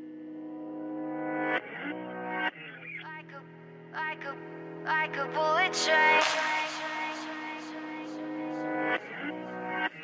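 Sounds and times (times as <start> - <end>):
person singing: 2.9 - 10.0
held synth chords: 3.4 - 10.0.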